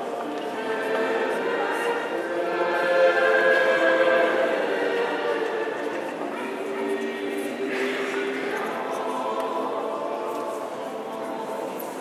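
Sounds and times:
voices singing church chant: 0.0s - 12.0s.

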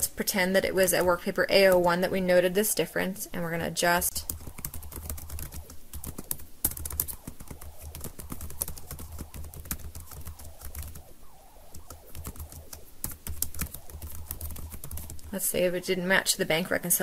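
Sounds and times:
low hum: 0.0s - 16.3s
keyboard typing: 4.1s - 11.0s, 11.7s - 15.4s.

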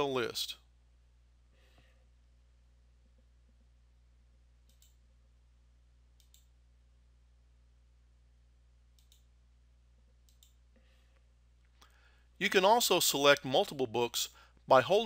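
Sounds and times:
low steady hum: 0.0s - 15.0s
computer mouse clicks: 4.6s - 5.0s, 6.2s - 6.5s, 9.0s - 9.3s, 10.2s - 10.6s.

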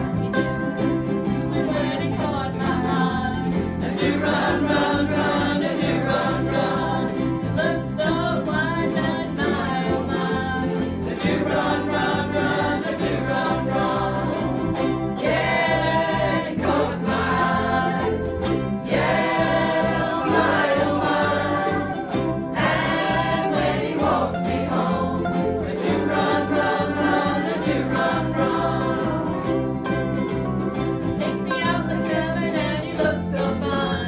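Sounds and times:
bass line: 0.0s - 34.0s
ukulele band strumming: 0.0s - 34.0s
voices singing together: 1.2s - 29.8s, 31.2s - 34.0s.

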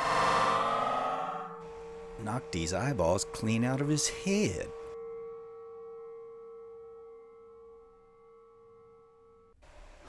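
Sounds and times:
faint bell-like ringing tone: 1.9s - 9.6s.

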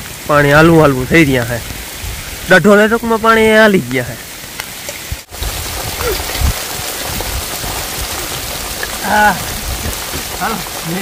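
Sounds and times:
rain on wet ground and puddles: 0.0s - 11.0s.

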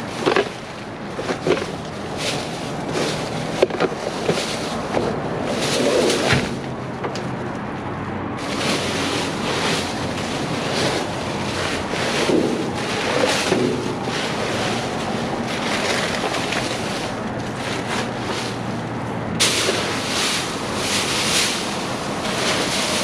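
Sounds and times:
plastic bags rustling: 0.0s - 7.4s, 8.4s - 23.0s.

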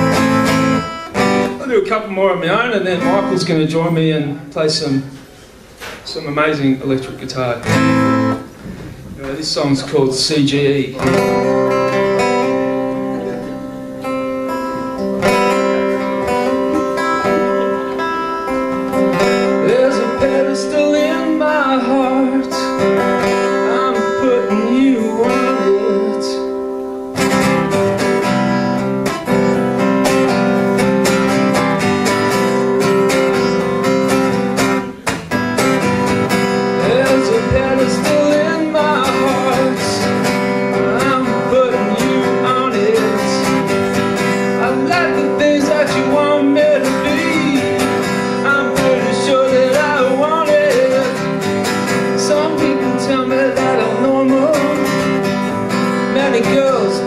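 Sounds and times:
acoustic guitar strumming chords: 0.0s - 6.1s, 7.2s - 57.0s.

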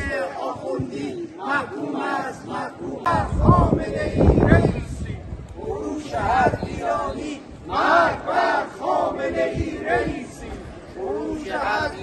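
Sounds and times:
protesters chanting: 0.0s - 12.0s.

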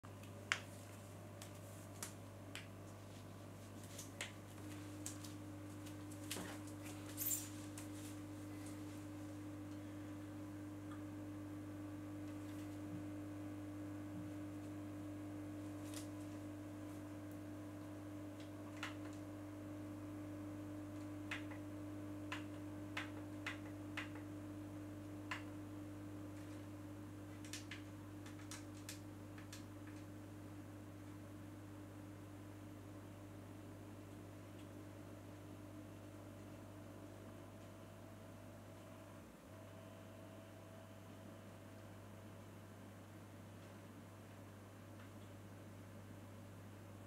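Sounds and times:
steady low hum: 0.1s - 47.0s.

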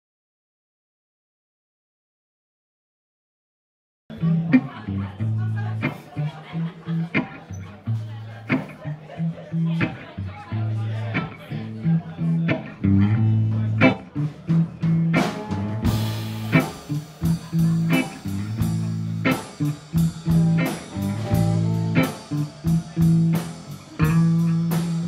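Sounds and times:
blues band playing: 4.1s - 25.0s
walking bass guitar line: 4.1s - 25.0s
drums and cymbals: 13.8s - 25.0s.

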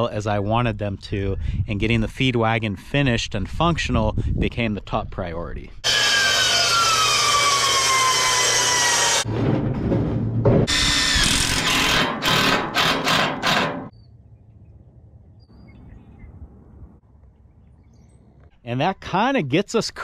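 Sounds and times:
miter saw cutting a board: 5.8s - 9.3s, 10.7s - 13.9s
impact driver driving screws: 10.7s - 13.9s.

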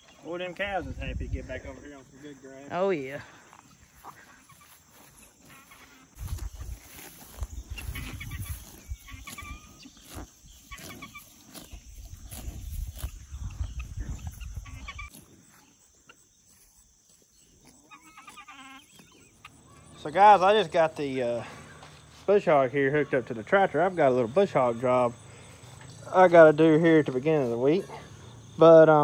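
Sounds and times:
hens clucking: 3.4s - 16.6s, 17.2s - 28.9s
cow tearing grass: 3.9s - 19.4s.

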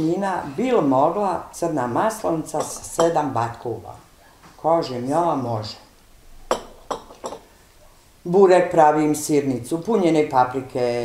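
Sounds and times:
tableware clinking on glass: 2.6s - 3.2s, 6.5s - 7.5s.

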